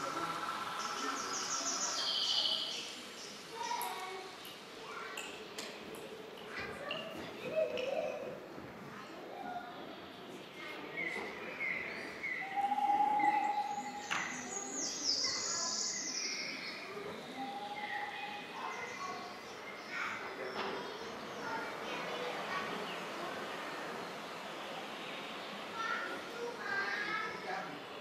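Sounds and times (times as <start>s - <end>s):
long steady whistled note: 12.4s - 14.1s
steady high tone: 12.5s - 14.1s.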